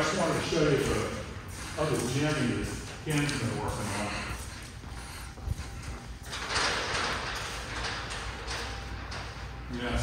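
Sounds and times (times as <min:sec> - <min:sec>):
workshop room noise: 0:00.0 - 0:10.0
footsteps on hard floor: 0:00.4 - 0:06.4.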